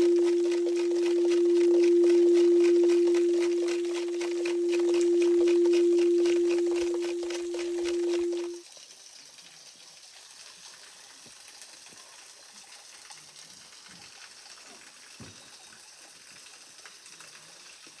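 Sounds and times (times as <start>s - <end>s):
held musical tone: 0.0s - 8.6s.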